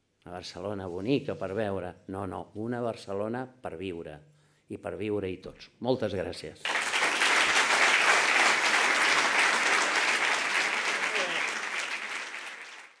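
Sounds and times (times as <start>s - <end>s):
audience clapping: 6.6s - 13.0s.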